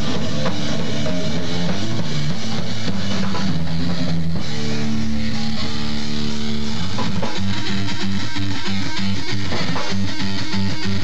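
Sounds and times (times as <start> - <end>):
drum kit: 0.0 - 11.0
electric guitar riffing: 0.0 - 11.0.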